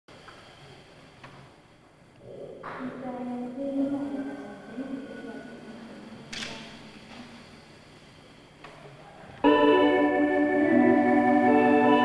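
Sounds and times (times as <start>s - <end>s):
electronic organ chords: 9.4s - 12.0s.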